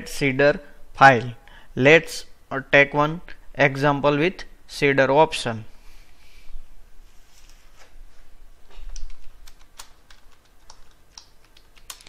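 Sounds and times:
keyboard typing: 0:08.9 - 0:12.0.

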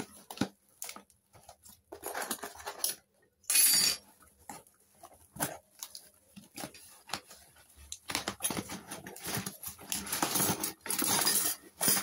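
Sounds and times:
cardboard packaging rustling: 0:00.0 - 0:03.1, 0:04.0 - 0:12.0.

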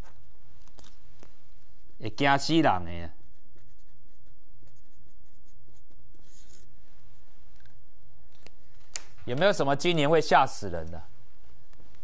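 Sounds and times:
marker scratching on poster board: 0:02.9 - 0:06.8.

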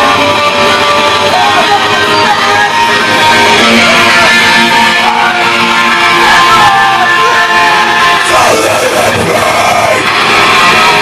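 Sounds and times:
electric guitars played hard: 0:00.0 - 0:11.0
loud live rock band: 0:00.0 - 0:11.0.

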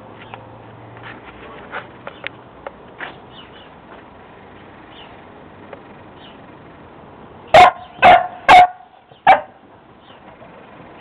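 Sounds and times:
puppy barking: 0:07.5 - 0:09.6.

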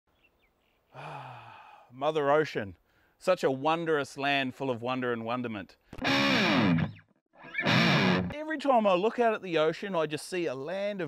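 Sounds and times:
man sighing: 0:00.9 - 0:01.9.

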